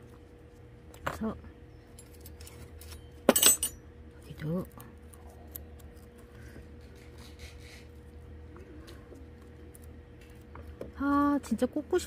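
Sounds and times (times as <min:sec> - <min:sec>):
small metal tools clinking: 0:01.9 - 0:03.8.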